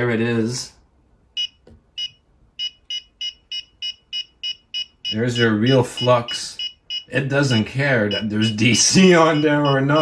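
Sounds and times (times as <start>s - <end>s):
meter high-pitched beeps: 1.4s - 10.0s.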